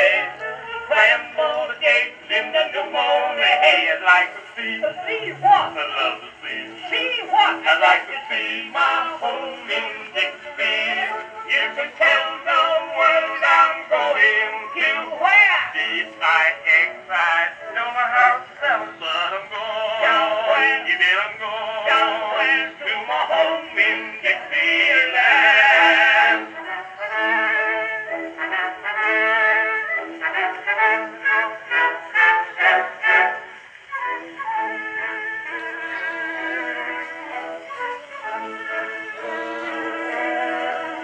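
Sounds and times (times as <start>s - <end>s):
phonograph playing instrumental music: 0.0s - 41.0s.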